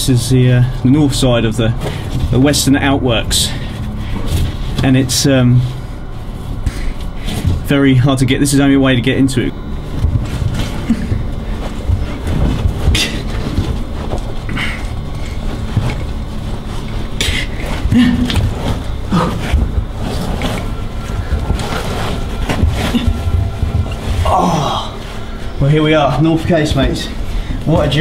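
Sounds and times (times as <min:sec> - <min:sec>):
people crawling through brick tunnel: 0:00.0 - 0:28.0.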